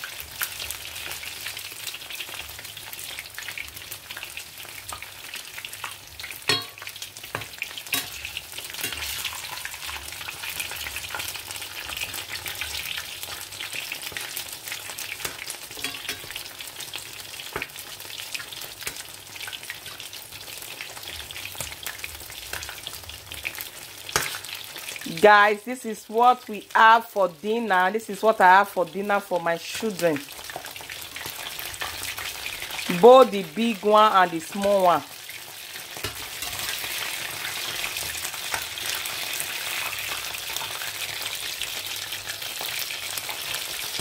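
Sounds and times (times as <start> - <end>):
fish frying in hot oil: 0.0 - 26.9, 28.1 - 44.0.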